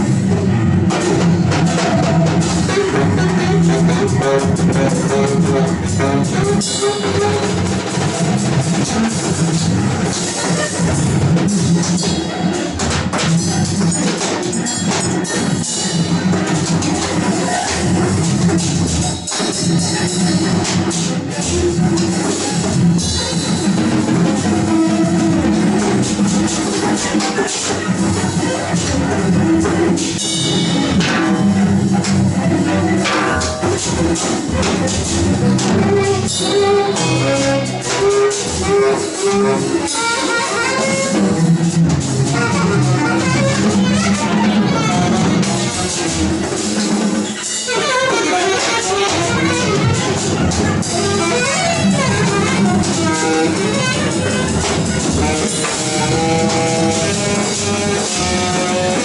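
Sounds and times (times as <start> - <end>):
cello bowing low notes: 0.0 - 10.0, 23.6 - 46.5, 47.8 - 59.0
drum kits played with sticks: 0.0 - 59.0
cymbal hits: 33.0 - 40.0.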